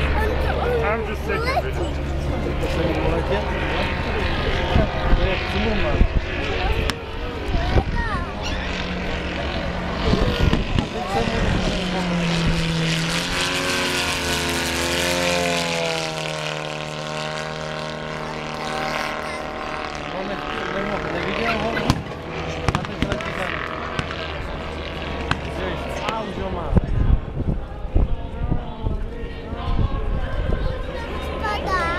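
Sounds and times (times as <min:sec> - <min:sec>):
people talking: 0:00.0 - 0:08.7, 0:09.8 - 0:12.2, 0:18.2 - 0:22.1, 0:22.7 - 0:23.6, 0:25.4 - 0:27.1, 0:28.0 - 0:31.9
model airplane engine buzzing: 0:00.0 - 0:31.9.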